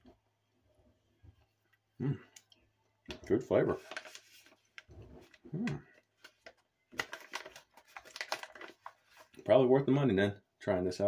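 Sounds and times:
snack pouch crinkling: 3.8 - 9.4.

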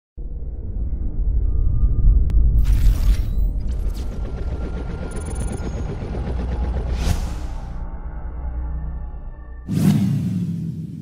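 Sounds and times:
dense low rumble: 0.2 - 9.6.

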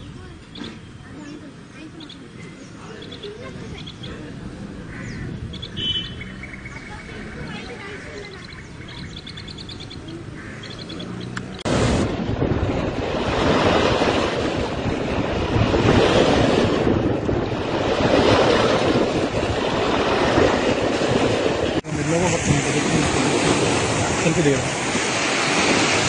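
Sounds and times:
choppy water: 0.0 - 26.0
wind on microphone: 0.0 - 26.0
faint bird chirps: 5.0 - 11.6.

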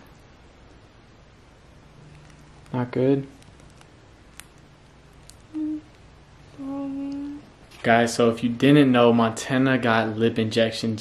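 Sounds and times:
woman humming closed-mouth: 5.5 - 7.5.

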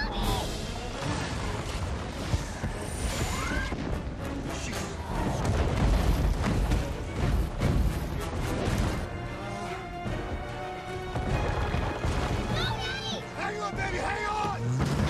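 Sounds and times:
dramatic music: 0.0 - 15.0.

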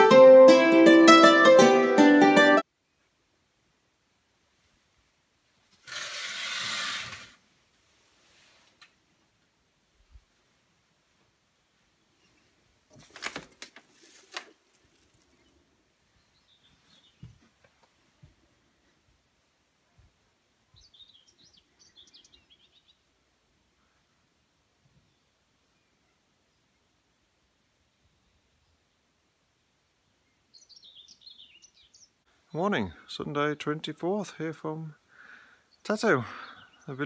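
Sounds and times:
curtain sliding along rail: 5.7 - 7.4
small songbird twittering: 30.5 - 32.2.

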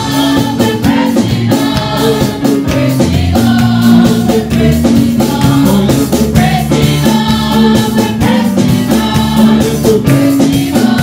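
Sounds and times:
gospel choir singing: 0.0 - 11.0
live band accompaniment: 0.0 - 11.0
steady percussive beat: 0.0 - 11.0.

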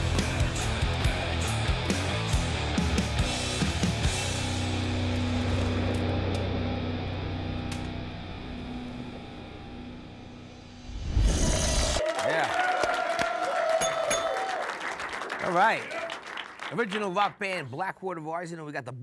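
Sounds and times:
hard rock guitar chord: 0.0 - 11.0
audience applauding and cheering: 11.9 - 17.4.

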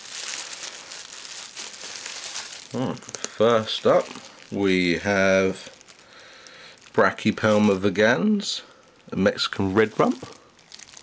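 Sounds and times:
packaging crinkling: 0.0 - 11.0.

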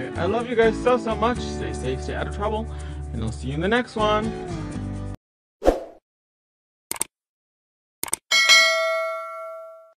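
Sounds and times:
bell chime: 8.3 - 9.9.

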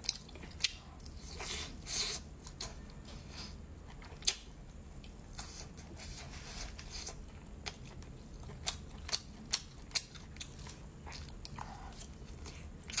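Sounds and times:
close chewing: 0.0 - 1.7, 3.8 - 13.0.

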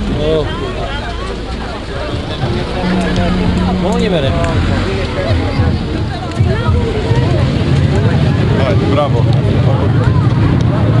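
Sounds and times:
car engine running: 0.0 - 11.0
people talking: 0.0 - 11.0.

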